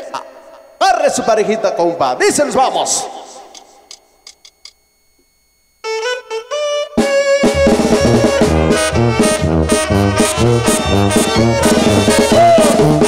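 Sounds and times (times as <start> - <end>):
brass band playing: 5.9 - 13.0
horn playing lead-in phrase: 5.9 - 13.0
tuba bass line: 5.9 - 13.0.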